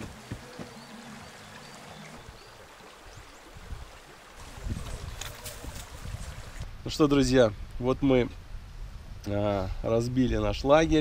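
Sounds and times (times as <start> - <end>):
stream flowing: 0.0 - 7.4.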